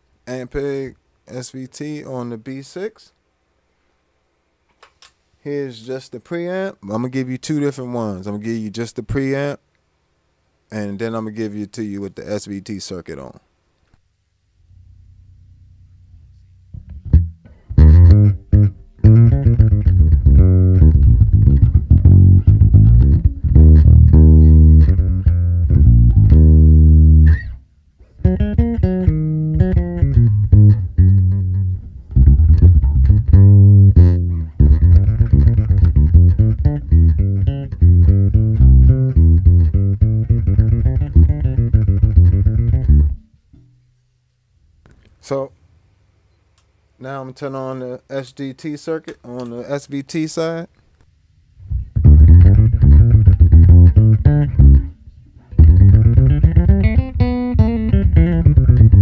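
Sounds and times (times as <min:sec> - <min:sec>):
plucked electric bass guitar: 0:14.8 - 0:43.3, 0:51.6 - 0:59.0.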